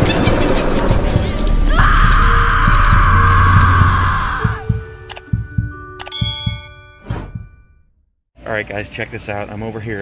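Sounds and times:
pulsing heartbeat-like low beat: 2.1s - 6.7s.

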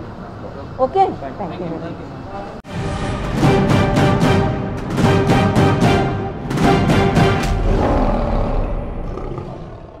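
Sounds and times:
logo jingle music: 2.7s - 7.4s
lion roar: 7.5s - 10.0s.

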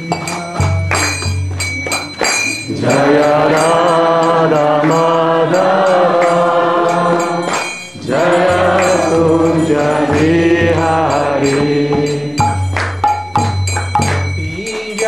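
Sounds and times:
devotional chanting: 0.0s - 15.0s.

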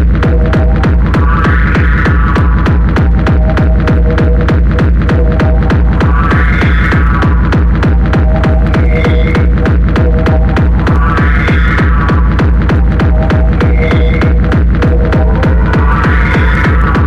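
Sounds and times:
fast kick drum: 0.0s - 17.0s
hard electronic dance music: 0.0s - 17.0s
heavy bass: 0.0s - 17.0s
high synth phrase: 0.6s - 17.0s.

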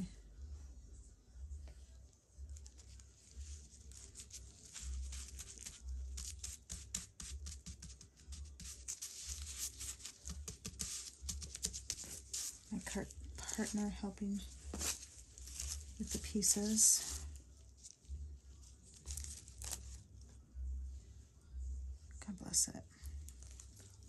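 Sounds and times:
wet tissue paper crinkling: 2.4s - 20.1s, 23.0s - 24.0s.

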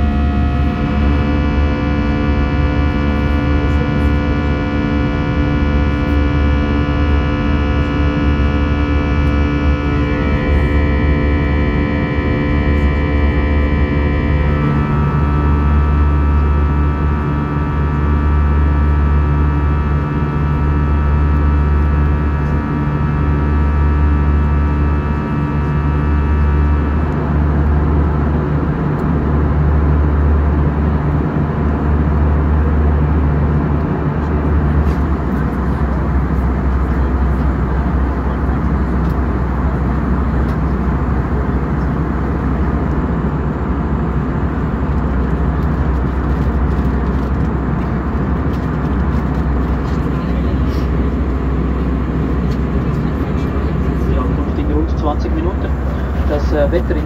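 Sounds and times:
airplane cabin noise: 0.0s - 57.0s.

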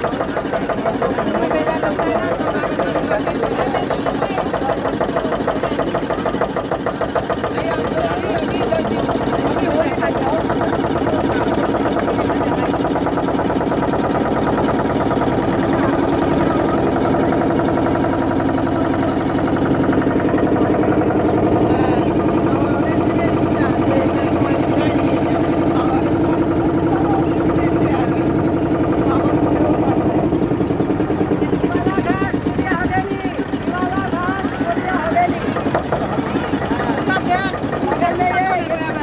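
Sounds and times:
motorboat engine running: 0.0s - 39.0s.

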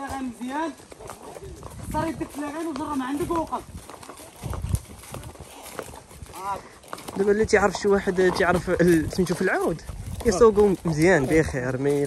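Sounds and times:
horse hooves clopping on dirt: 0.0s - 12.0s.

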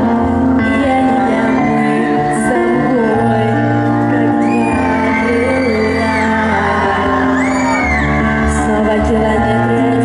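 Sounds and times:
woman singing pop song: 0.0s - 10.0s
long high shrieks: 1.0s - 8.7s.

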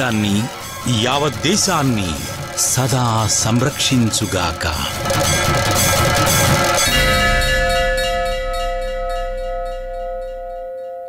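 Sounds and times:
background music: 0.0s - 11.0s
bell-like chime: 0.0s - 11.0s.

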